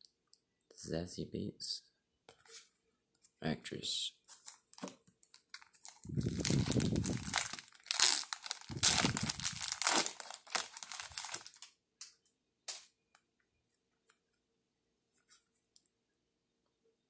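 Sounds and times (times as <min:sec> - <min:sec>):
foil wrapper tearing and crinkling: 0:05.2 - 0:11.7.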